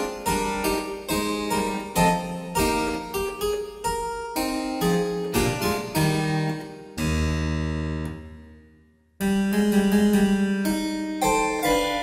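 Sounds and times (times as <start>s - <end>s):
harpsichord playing: 9.4s - 12.0s.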